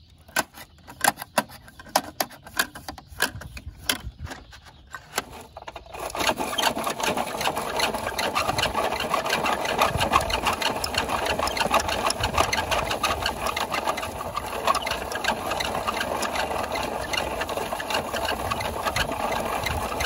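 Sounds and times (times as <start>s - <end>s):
toy motor and gears running: 0.3s - 20.0s.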